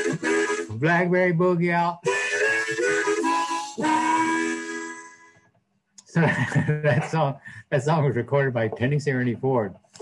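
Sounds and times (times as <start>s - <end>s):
harmonica chords: 0.0s - 5.5s.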